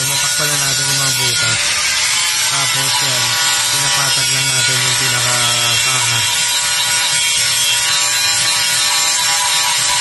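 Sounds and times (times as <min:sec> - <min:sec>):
angle grinder grinding metal: 0:00.0 - 0:10.0.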